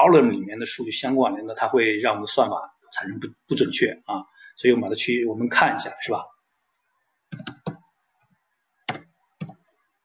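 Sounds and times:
keyboard key clicks: 7.3 - 7.8.

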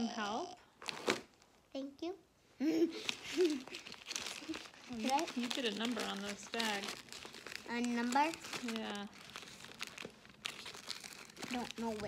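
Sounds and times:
bag crinkling and rustling: 2.9 - 12.0.

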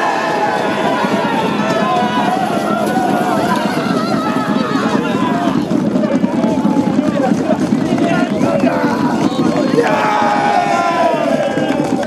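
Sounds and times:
group shouting and cheering: 0.0 - 7.3, 7.9 - 12.0.

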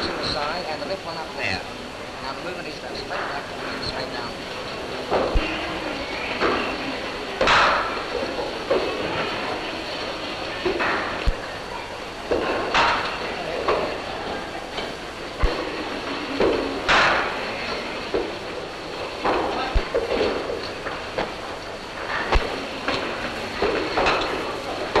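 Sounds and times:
film soundtrack hiss and crackle: 0.0 - 25.0
murmur of onlookers: 0.0 - 25.0.

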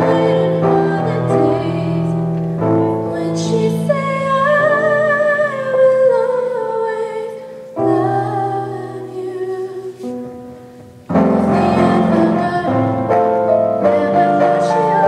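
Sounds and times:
woman singing a slow ballad: 0.0 - 10.3, 11.4 - 15.0
piano accompaniment: 0.0 - 15.0.

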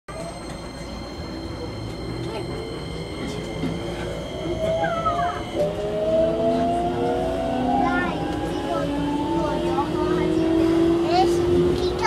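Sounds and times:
traction motor whine: 0.1 - 11.8
train running rumble: 0.1 - 12.0
falling squeal: 0.2 - 5.8.

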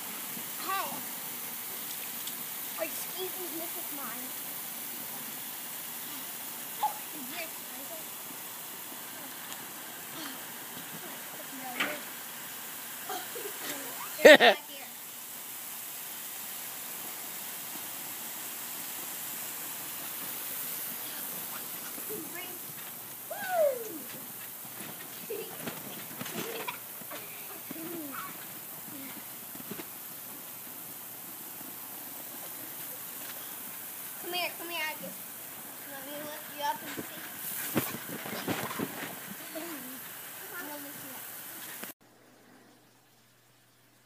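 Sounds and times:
sprinkler spraying water: 0.0 - 42.0
children calling out: 6.8 - 7.4, 23.3 - 24.2.

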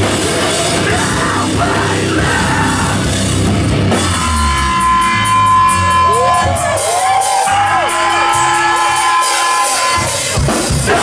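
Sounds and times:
guitar tones and feedback: 0.0 - 10.3
crowd noise: 0.0 - 11.0.

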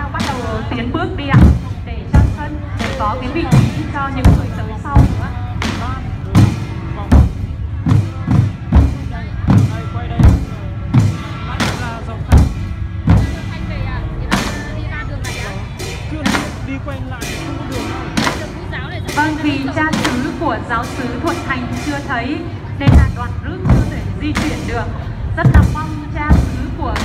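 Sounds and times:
large drum beating: 0.0 - 27.0
music playing: 0.0 - 27.0.

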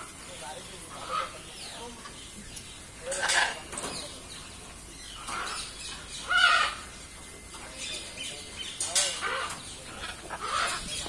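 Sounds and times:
macaws calling: 0.0 - 2.0, 3.0 - 7.0, 7.8 - 11.0.

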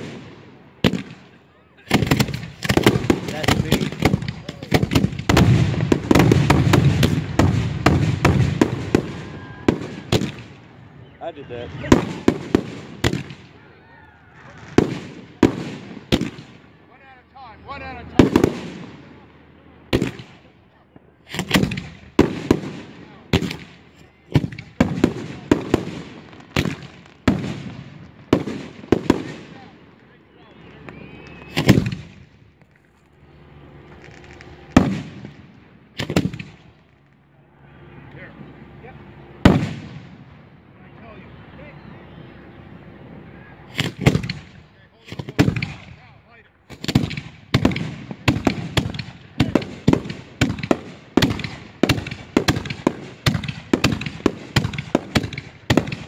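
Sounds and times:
fireworks bangs: 0.0 - 13.7, 14.4 - 32.6, 33.5 - 37.2, 39.4 - 40.5, 43.7 - 56.0.

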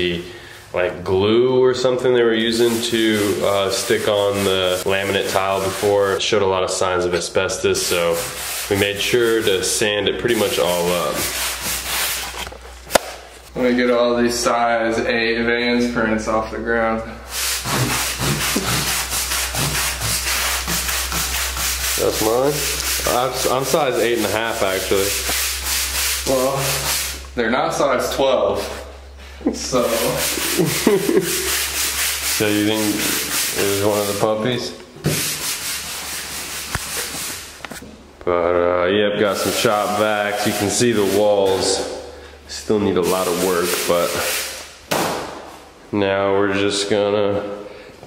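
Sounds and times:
rough rubbing noise: 2.2 - 6.2, 7.6 - 12.7, 17.3 - 27.3, 29.7 - 37.6, 39.2 - 41.9
push broom sweeping concrete: 2.3 - 6.2, 7.6 - 12.5, 17.3 - 27.4, 29.6 - 37.8, 39.2 - 41.9, 42.6 - 44.7.

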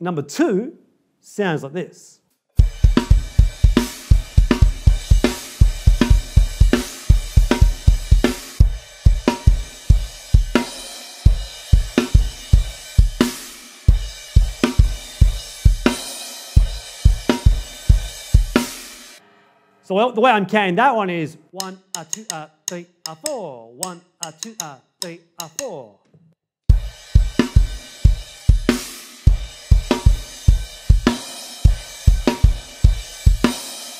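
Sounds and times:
bass drum strokes: 2.6 - 10.6
rock drum groove: 2.6 - 19.2, 26.7 - 33.9.

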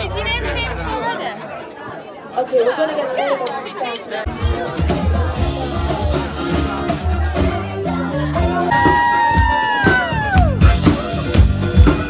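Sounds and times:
people talking over one another: 0.0 - 12.0
band bass line: 4.3 - 12.0.

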